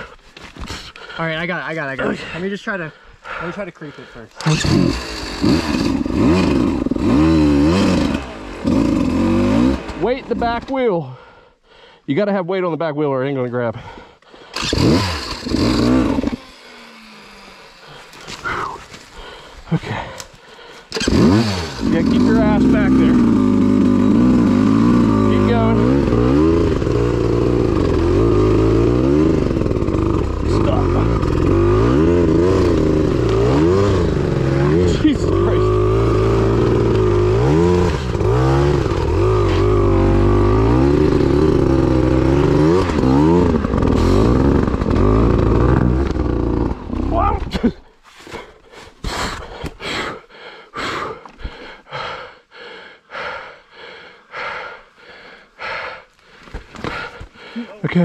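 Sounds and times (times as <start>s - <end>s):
dirt bike engine revving: 4.4s - 10.9s, 14.5s - 18.8s, 20.9s - 47.4s.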